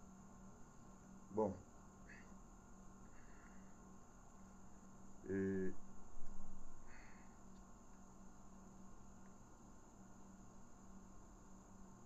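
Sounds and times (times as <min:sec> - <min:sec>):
low hum: 0:00.0 - 0:12.0
steady hiss: 0:00.0 - 0:12.0.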